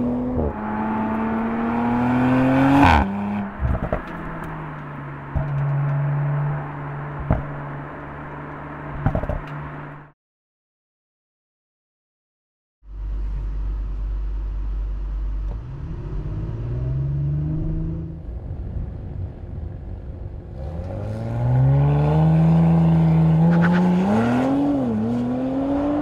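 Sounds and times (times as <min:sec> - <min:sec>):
car engine accelerating: 0:00.0 - 0:10.1, 0:12.9 - 0:26.0.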